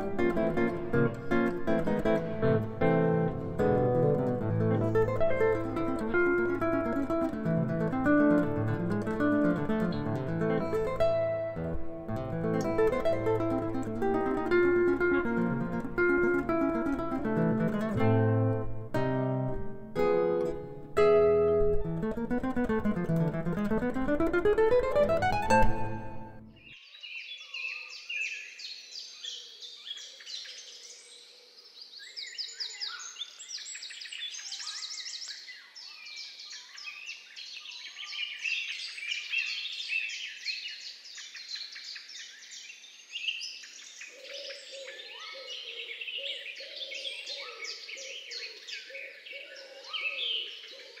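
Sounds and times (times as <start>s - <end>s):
birds chirping and trilling: 26.6s - 51.0s.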